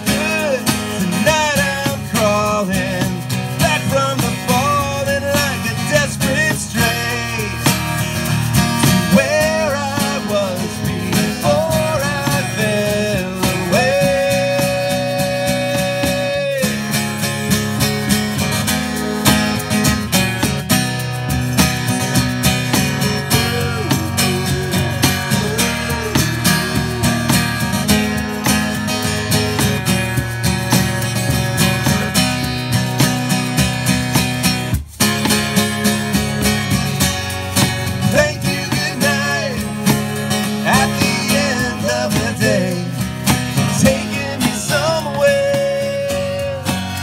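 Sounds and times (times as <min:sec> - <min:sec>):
cajon and shaker beat: 0:00.0 - 0:47.0
strummed acoustic guitar: 0:00.0 - 0:47.0
person singing: 0:09.1 - 0:17.9, 0:21.6 - 0:28.6, 0:43.7 - 0:47.0.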